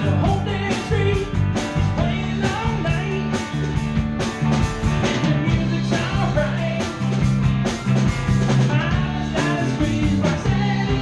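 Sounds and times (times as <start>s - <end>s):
drum kit beat: 0.0s - 11.0s
electric guitar: 0.0s - 11.0s
live rock band playing: 0.0s - 11.0s.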